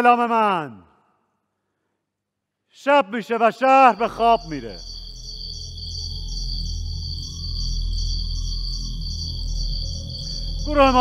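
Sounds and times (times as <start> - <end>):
steady high tones: 3.7 - 11.0
faint high pulse: 3.8 - 11.0
deep low drone: 4.0 - 11.0.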